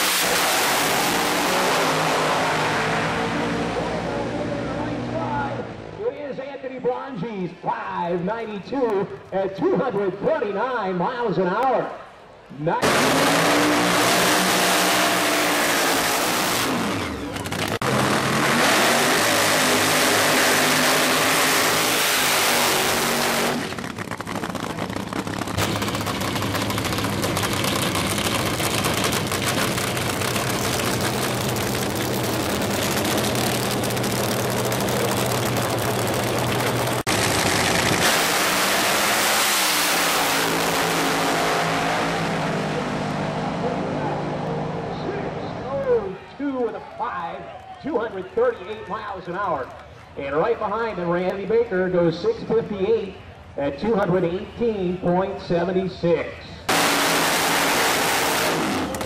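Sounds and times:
supercharged drag car engine revving: 0:00.0 - 0:05.8, 0:12.8 - 0:45.6, 0:56.7 - 0:59.0.

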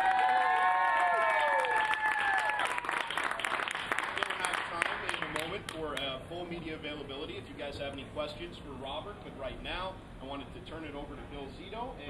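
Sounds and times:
long held whoops: 0:00.0 - 0:03.4
audience applauding: 0:00.0 - 0:05.6.

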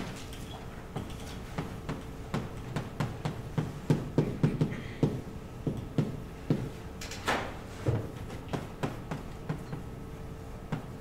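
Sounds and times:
chalk tapping on blackboard: 0:08.3 - 0:09.9.

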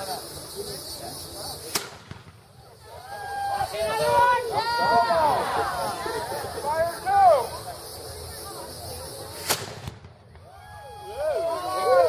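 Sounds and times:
gunshot crack: 0:01.7 - 0:02.5, 0:09.4 - 0:10.2.

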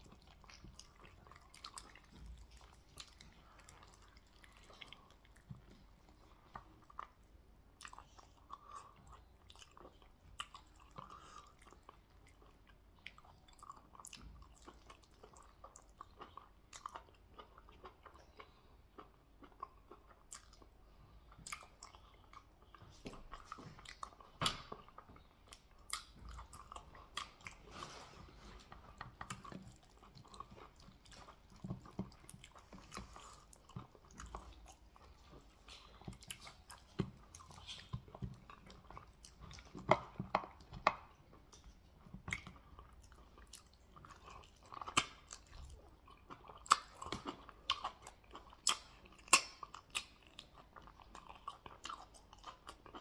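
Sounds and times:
chewing and biting meat: 0:00.0 - 0:53.0.

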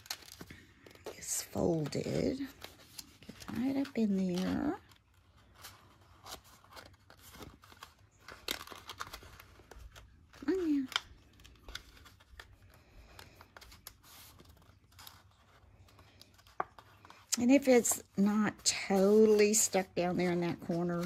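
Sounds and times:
crisp clicks and scrapes: 0:00.0 - 0:21.0
paper rustling and crinkling: 0:00.0 - 0:21.0.

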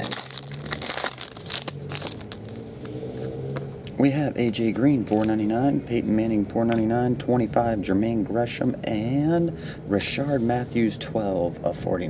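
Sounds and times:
foil wrapper crinkling and tearing: 0:00.0 - 0:02.5.

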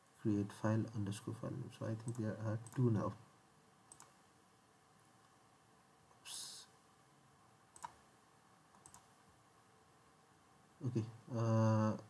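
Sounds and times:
computer mouse clicks: 0:02.0 - 0:02.9, 0:03.9 - 0:04.2, 0:07.8 - 0:08.0, 0:08.7 - 0:09.2.

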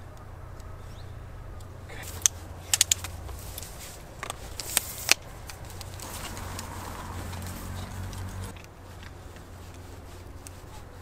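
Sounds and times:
camera gear clicks and knocks: 0:02.1 - 0:06.3.

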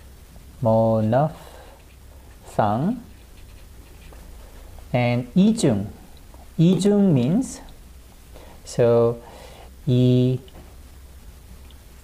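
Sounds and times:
marker scratching on paper: 0:03.1 - 0:04.3.

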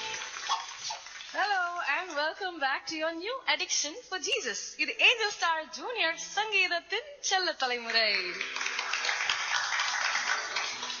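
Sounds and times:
music: 0:00.0 - 0:00.4, 0:10.2 - 0:11.0
audience applause: 0:00.0 - 0:01.8, 0:08.2 - 0:11.0
woman speaking: 0:01.4 - 0:08.4.

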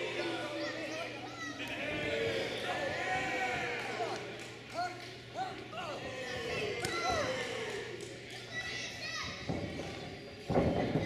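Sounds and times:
spectators shouting: 0:00.0 - 0:04.3.

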